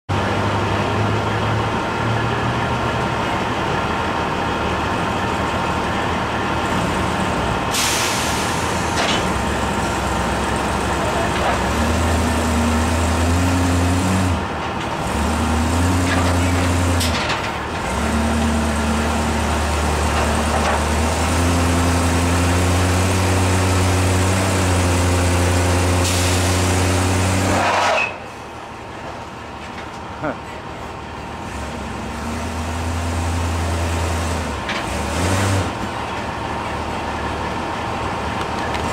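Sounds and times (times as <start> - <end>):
vehicle engines running: 0.1 - 38.9.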